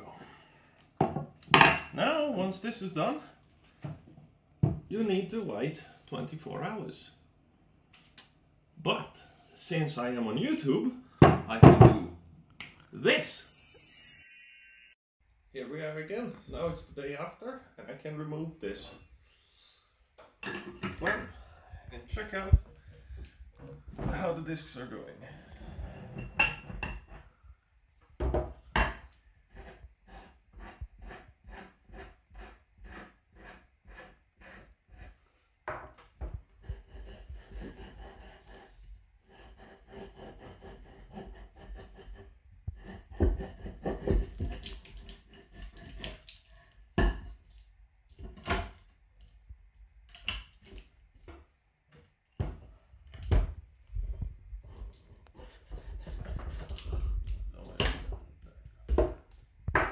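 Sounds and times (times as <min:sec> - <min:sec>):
metal scraping and rubbing: 0:29.5 - 0:35.2.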